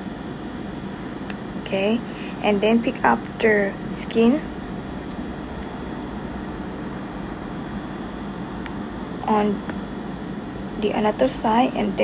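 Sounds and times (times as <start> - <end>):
ventilation fan whirring: 0.0 - 12.0.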